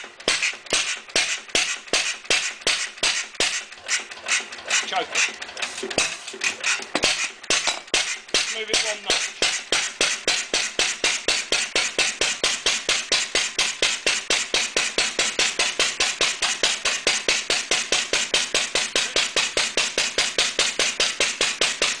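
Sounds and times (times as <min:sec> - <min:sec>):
stationary engine running: 0:00.0 - 0:22.0.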